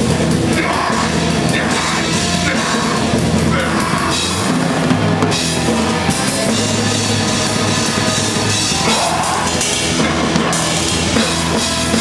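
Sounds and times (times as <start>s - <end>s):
drums and cymbals: 0.0s - 12.0s
held bass and guitar chords: 0.0s - 12.0s.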